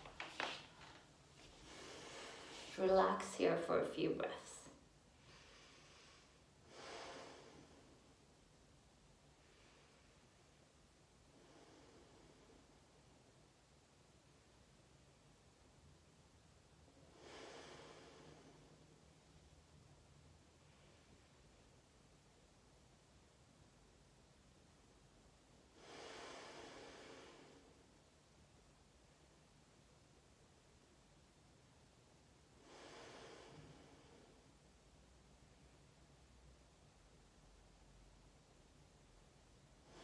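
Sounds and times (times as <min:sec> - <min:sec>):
person breathing slowly: 0:00.8 - 0:02.8, 0:05.2 - 0:08.3, 0:11.2 - 0:13.0, 0:17.1 - 0:19.0, 0:25.7 - 0:27.8, 0:32.6 - 0:34.6.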